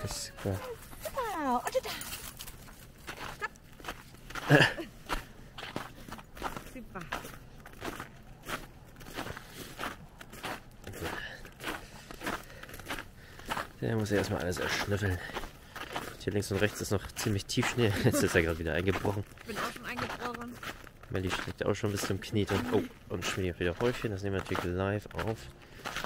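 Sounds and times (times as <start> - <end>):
footsteps crunching in snow: 0.0 - 26.0.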